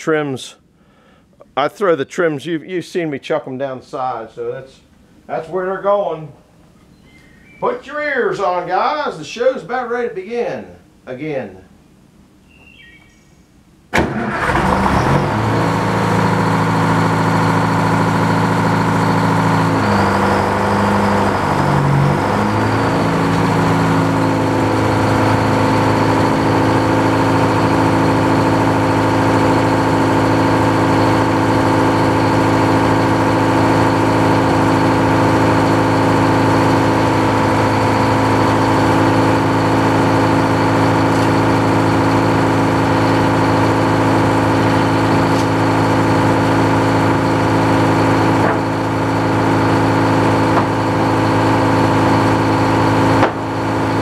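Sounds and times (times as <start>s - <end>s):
sawmill engine running: 14.0s - 54.0s.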